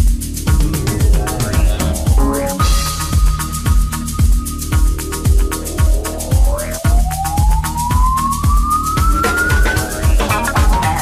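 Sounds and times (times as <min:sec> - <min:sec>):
house music with kick drum: 0:00.0 - 0:11.0
rising synth sweep: 0:00.2 - 0:11.0.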